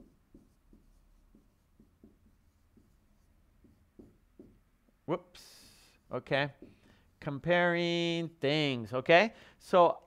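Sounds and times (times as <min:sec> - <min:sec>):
marker writing on whiteboard: 0:00.0 - 0:08.1.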